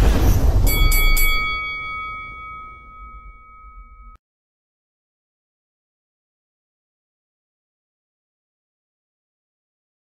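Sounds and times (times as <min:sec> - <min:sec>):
deep rumbling whoosh: 0:00.0 - 0:03.3
bright bell-like ding: 0:00.7 - 0:04.2.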